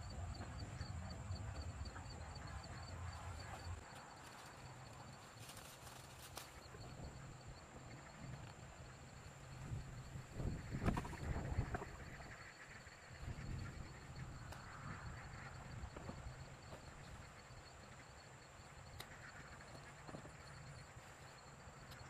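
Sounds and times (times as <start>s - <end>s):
leaves rustling: 3.8s - 6.7s.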